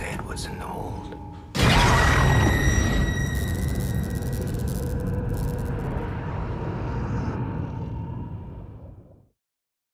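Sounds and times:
heavy low rumble: 2.8 - 9.3.

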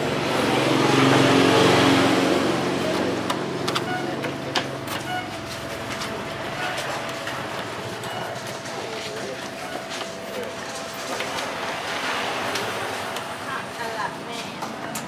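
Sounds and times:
motor vehicle passing: 0.0 - 3.9.

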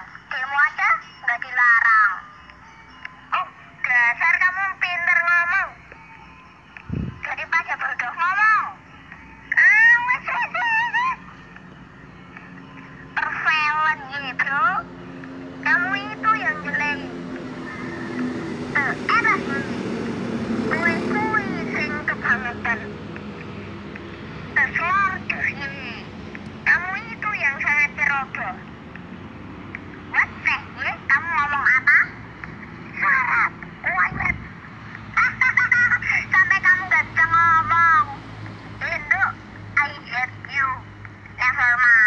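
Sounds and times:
children speaking: 9.6 - 11.4
low engine hum: 10.2 - 41.8.

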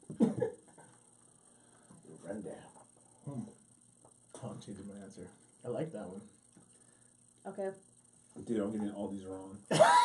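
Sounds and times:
cough-like laugh: 0.1 - 0.9, 9.7 - 10.0.

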